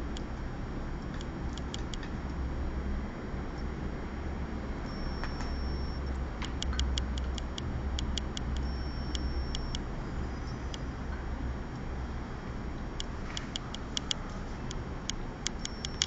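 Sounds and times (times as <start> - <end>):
light irregular ticks: 0.1 - 2.4, 4.9 - 9.9, 13.0 - 16.0
low hum: 4.8 - 16.0.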